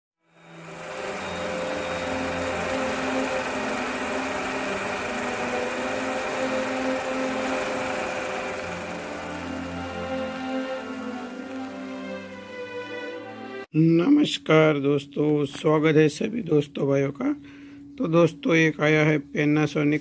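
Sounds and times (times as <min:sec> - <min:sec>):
intro music with long tones: 0:00.2 - 0:13.8.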